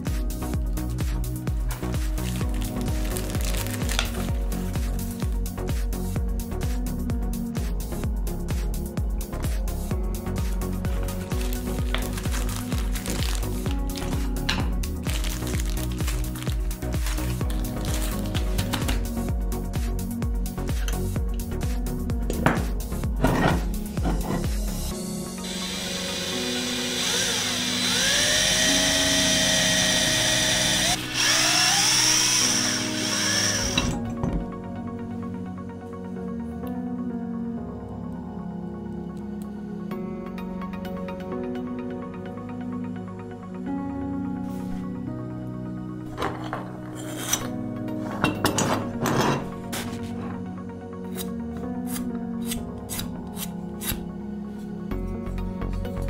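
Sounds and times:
background music: 0.0s - 56.0s
electric drill boring into wood: 25.4s - 34.1s
metal point scraping painted metal: 46.1s - 50.4s.

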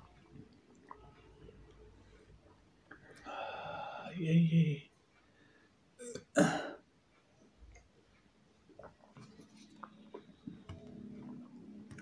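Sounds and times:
man clearing his throat: 6.0s - 6.8s.

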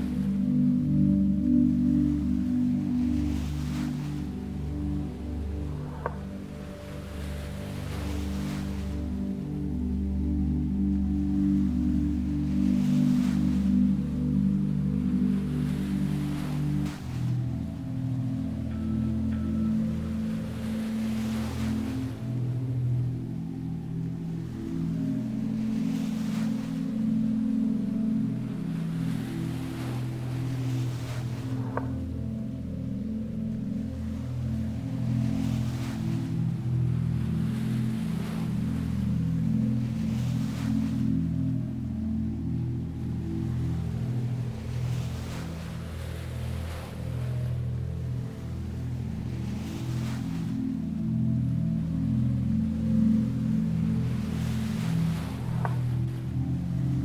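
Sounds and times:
ambient drone music: 0.0s - 57.0s
sea waves washing in: 0.0s - 57.0s.

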